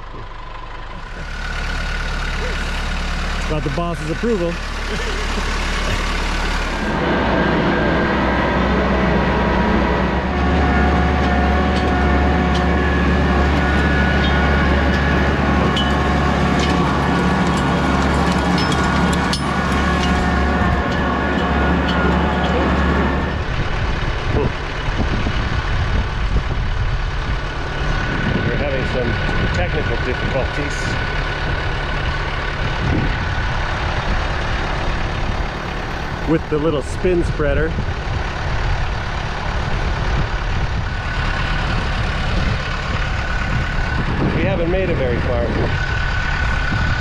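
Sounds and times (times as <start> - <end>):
tractor diesel engine running: 0.0 - 47.0.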